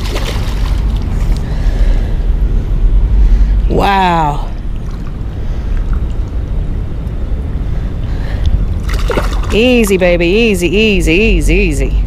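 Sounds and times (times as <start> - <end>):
fish splashing in water: 0.0 - 1.4, 8.8 - 9.6
wind buffeting microphone: 0.0 - 12.0.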